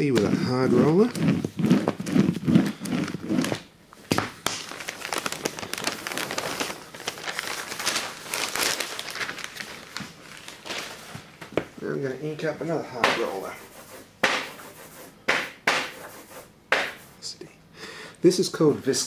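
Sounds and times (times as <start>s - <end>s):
roller rubbing paper: 0.2s - 3.6s, 13.0s - 17.2s
newspaper crinkling and rustling: 4.4s - 11.4s.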